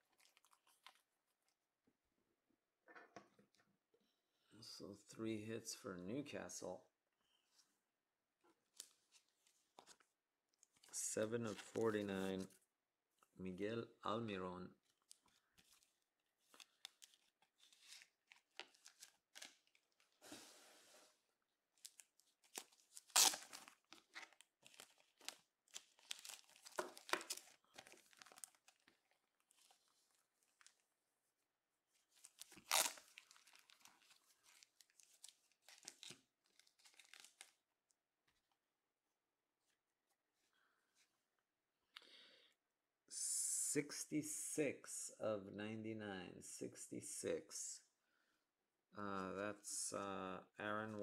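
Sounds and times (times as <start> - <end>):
plastic sleeves crinkling: 14.8 - 20.3, 21.8 - 30.9, 31.9 - 37.6.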